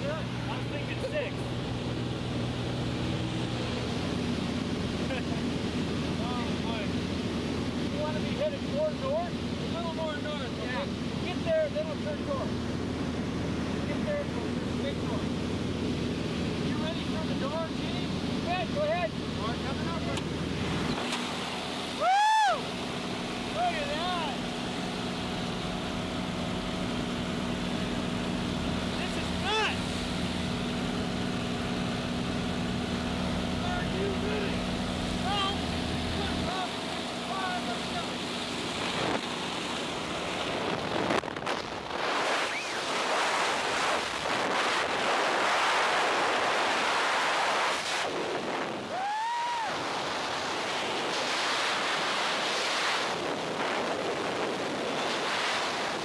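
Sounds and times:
plane engine drone: 0.0 - 56.0
rushing freefall wind: 12.6 - 56.0.

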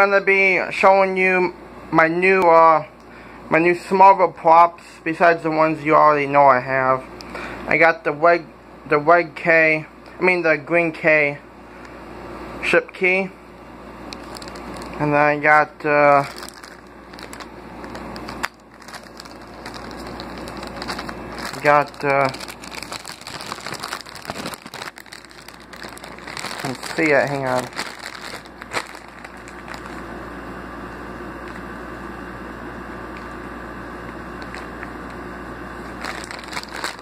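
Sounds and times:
plastic bags crinkling: 14.2 - 30.1, 34.4 - 34.8, 35.8 - 37.0.

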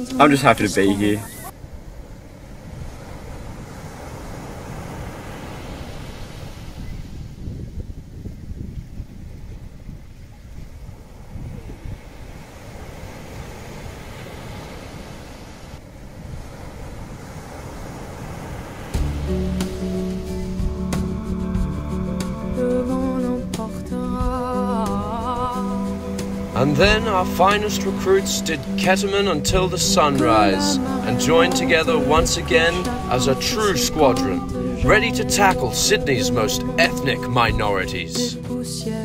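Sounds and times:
ocean surf washing onto beach: 0.0 - 21.2, 22.2 - 38.4
wind on microphone: 0.8 - 36.8
guitar music: 19.0 - 39.0.

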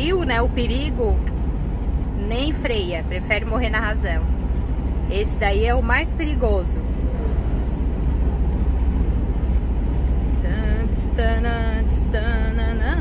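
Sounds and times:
diesel truck engine drone: 0.0 - 13.0.

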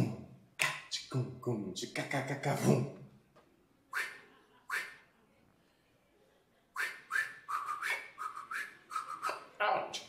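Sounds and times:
whistled squeaky vocal syllables: 3.9 - 5.0, 6.8 - 9.6.

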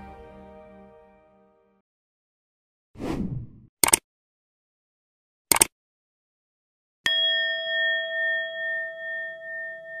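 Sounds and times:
notification bell chime: 7.1 - 10.0.

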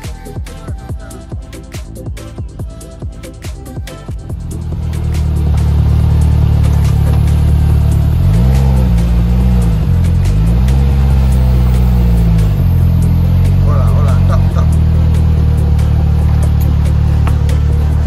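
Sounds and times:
bass-heavy music: 0.0 - 18.0
three-wheeler engine running: 4.1 - 18.0.

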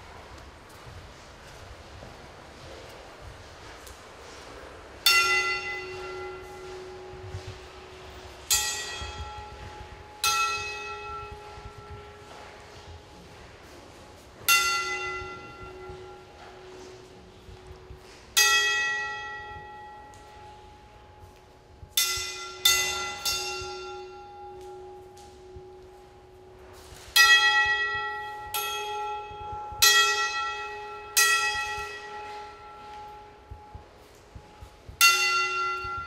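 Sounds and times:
bell-like metal tone ringing: 5.0 - 36.0.

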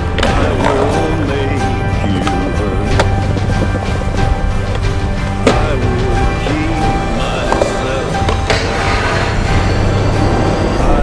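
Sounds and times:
soundtrack music: 0.0 - 11.0
skateboard clack: 7.4 - 9.8
skateboard sliding on metal rail: 7.5 - 10.4.

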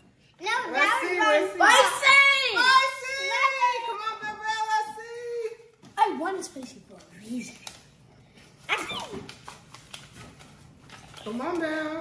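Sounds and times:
paper cards rustling in glass bowl: 6.6 - 12.0.

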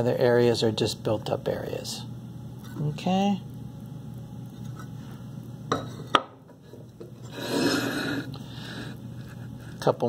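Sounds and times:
ceramic tile scraping on wood: 6.7 - 8.3.

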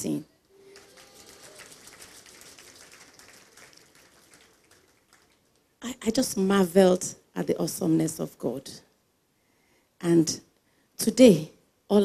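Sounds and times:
faint audience applause: 0.5 - 5.8.

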